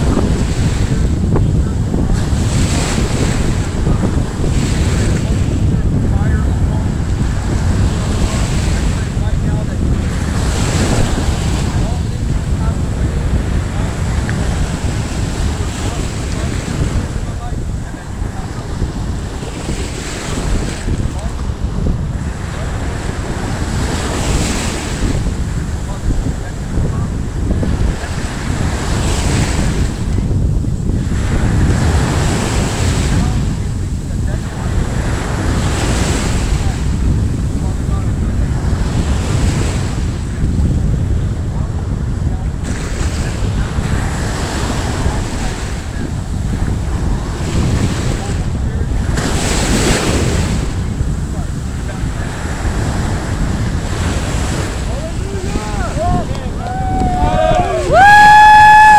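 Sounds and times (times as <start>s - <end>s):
surf on shore: 0.0s - 58.9s
waves washing in: 0.0s - 58.9s
wind buffeting microphone: 0.0s - 58.9s.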